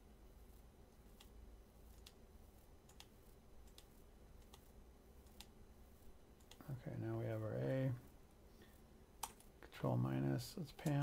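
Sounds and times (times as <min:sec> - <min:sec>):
quiet room hum: 0:00.0 - 0:11.0
faint computer mouse clicks: 0:01.2 - 0:02.2, 0:02.9 - 0:05.5
person speaking: 0:09.6 - 0:11.0.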